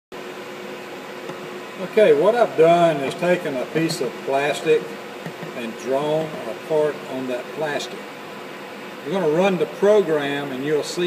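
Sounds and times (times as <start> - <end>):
idle mill machine hum with two tones: 0.2 - 11.0.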